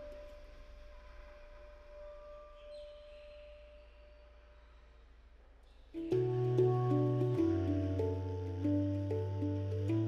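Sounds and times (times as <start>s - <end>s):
handpan note ringing: 6.1s - 10.0s.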